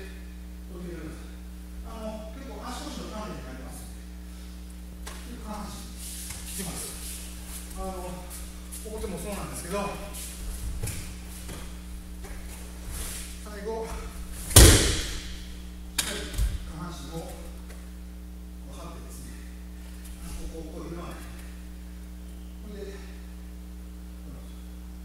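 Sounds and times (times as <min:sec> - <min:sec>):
electrical hum: 0:00.0 - 0:25.0
body slamming onto mats: 0:10.3 - 0:15.6.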